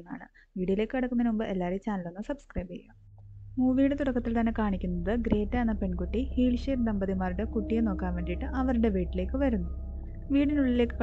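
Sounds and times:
person narrating: 3.6s - 9.7s, 10.3s - 11.0s.

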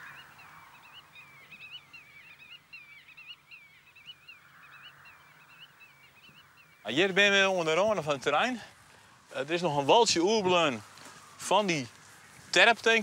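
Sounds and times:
songbird warbling: 0.0s - 7.2s.

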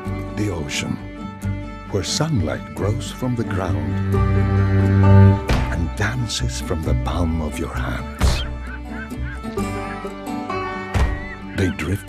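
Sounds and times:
slow instrumental music: 0.0s - 12.0s
gulls calling: 6.9s - 12.0s.

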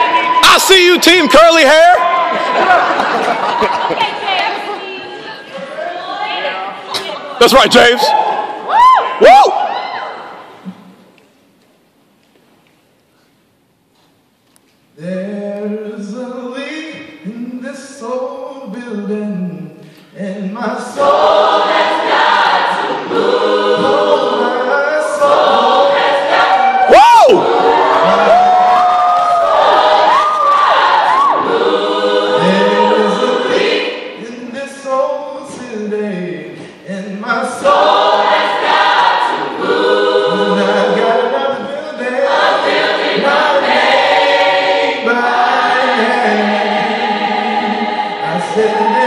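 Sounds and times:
gospel choir singing a cappella: 0.0s - 0.4s, 15.0s - 49.0s
male soloist singing: 45.0s - 49.0s.

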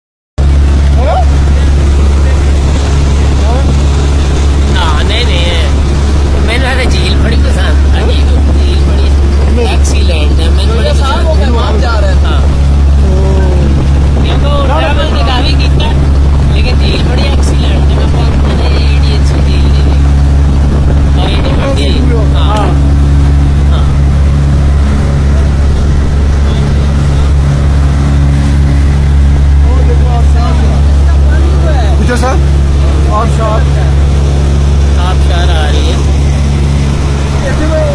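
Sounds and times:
motorboat engine droning: 0.4s - 37.9s.

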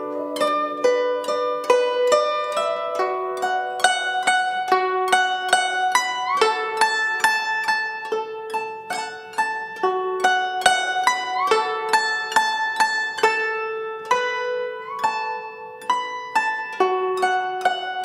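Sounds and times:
plucked zither melody: 0.0s - 18.0s.

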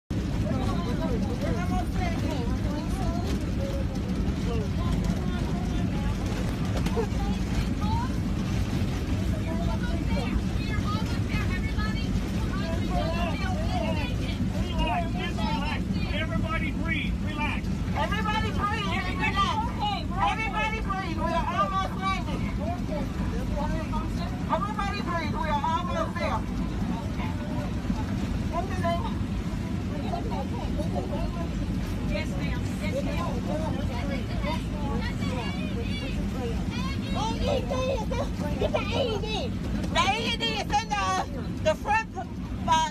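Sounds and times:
aircraft cabin roar: 0.1s - 42.9s
constant low hum: 0.1s - 42.9s.

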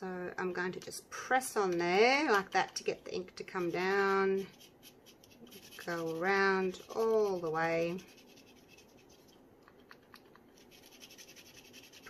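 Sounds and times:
marker nib scratching: 3.5s - 12.0s.

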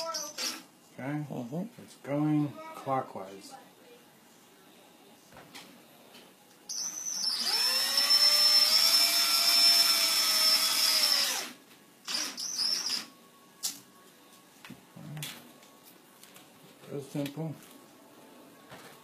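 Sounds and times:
cordless drill motor running: 6.7s - 13.0s.

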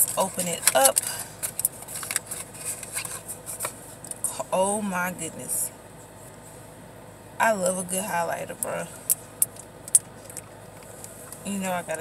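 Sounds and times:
cardboard box rustling and scraping: 0.0s - 3.8s.

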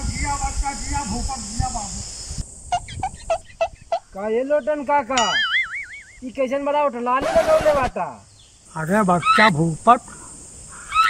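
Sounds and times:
background hiss: 0.0s - 11.0s
bird-like squawks falling in pitch: 10.7s - 11.0s.

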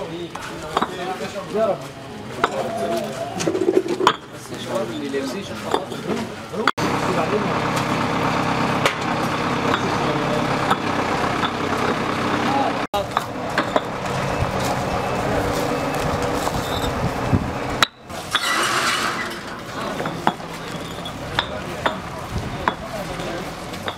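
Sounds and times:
workers' voices: 0.0s - 23.9s
engine running: 6.8s - 23.9s
paving blocks clicking and knocking: 13.0s - 14.0s, 19.6s - 23.9s.

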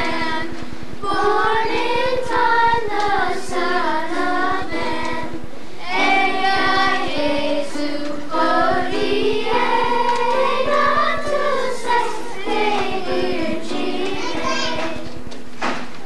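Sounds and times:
children's choir singing: 0.0s - 15.3s.

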